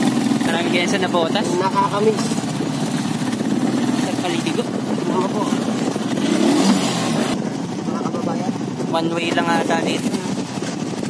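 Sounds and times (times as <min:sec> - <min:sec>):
motorcycle engine running: 0:00.0 - 0:11.0
road noise: 0:00.0 - 0:11.0.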